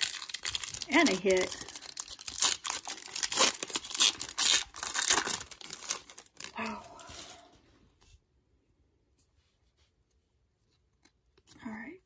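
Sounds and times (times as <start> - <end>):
foil wrapper tearing and crinkling: 0.0 - 6.6.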